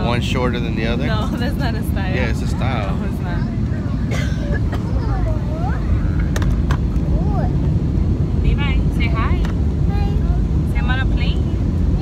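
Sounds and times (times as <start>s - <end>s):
airliner cabin rumble: 0.0s - 12.0s.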